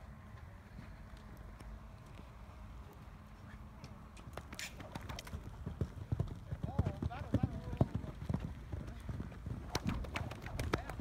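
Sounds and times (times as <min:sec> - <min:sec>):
horse hoofbeats on sand: 0:04.3 - 0:11.0.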